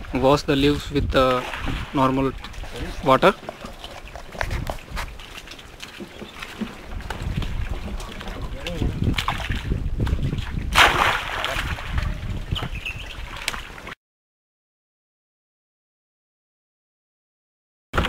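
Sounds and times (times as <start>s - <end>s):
water sloshing and splashing: 0.0s - 14.0s.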